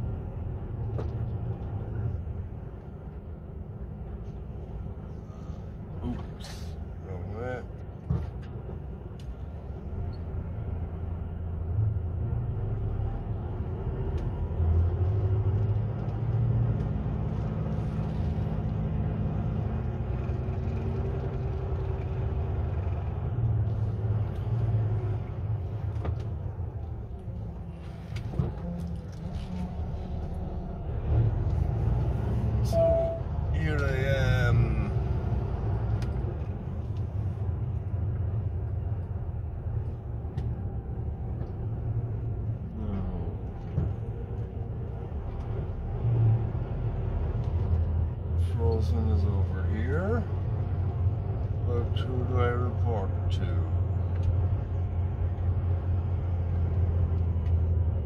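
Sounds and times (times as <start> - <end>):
lorry engine droning: 0.0 - 58.0.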